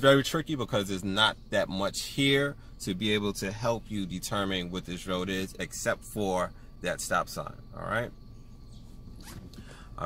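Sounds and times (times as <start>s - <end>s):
low car cabin running noise: 0.0s - 10.0s.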